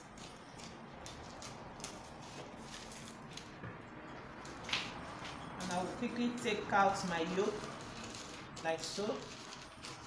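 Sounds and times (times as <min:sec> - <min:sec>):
scissors snipping paper: 0:00.0 - 0:03.5, 0:06.9 - 0:10.0
paper crackling and rustling: 0:06.9 - 0:10.0.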